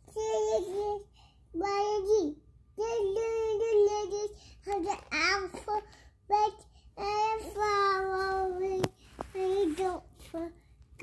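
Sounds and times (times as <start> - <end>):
toddler singing: 0.1 - 10.5.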